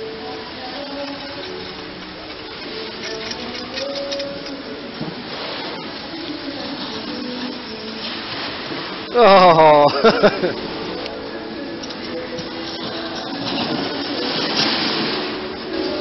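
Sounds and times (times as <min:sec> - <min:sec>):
snowboard sliding over snow: 0:05.1 - 0:10.8, 0:13.0 - 0:16.0.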